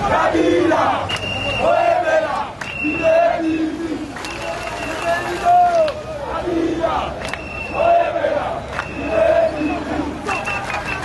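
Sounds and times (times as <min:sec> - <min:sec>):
crowd shouting and chanting: 0:00.0 - 0:11.0.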